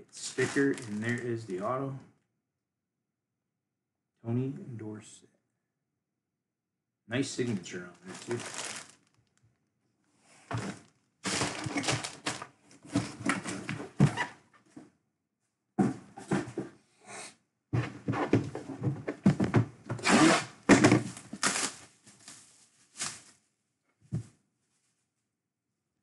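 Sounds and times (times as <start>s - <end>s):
plastic wrapping crinkling: 0.2s - 1.7s, 7.4s - 9.4s, 10.7s - 13.1s, 21.1s - 23.4s
cardboard box rustling: 0.4s - 1.2s, 8.1s - 9.0s, 10.6s - 14.1s.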